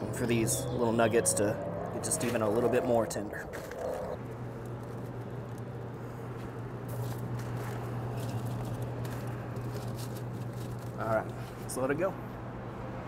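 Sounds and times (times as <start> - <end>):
smoker humming: 0.0 - 13.0
aluminium foil crinkling: 7.0 - 11.7.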